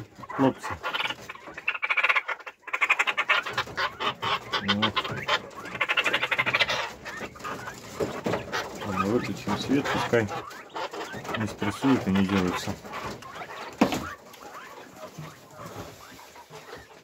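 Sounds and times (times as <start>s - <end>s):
quail rattling chatter: 0.0s - 17.0s.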